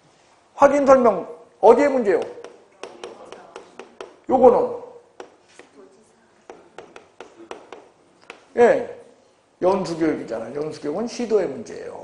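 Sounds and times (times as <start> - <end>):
chalk tapping on chalkboard: 2.1 - 4.3, 5.2 - 5.8, 6.4 - 8.6.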